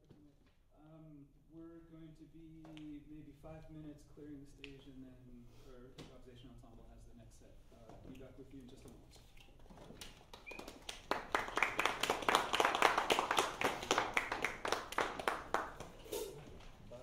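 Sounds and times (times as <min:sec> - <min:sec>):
audience applauding: 0:10.2 - 0:16.0.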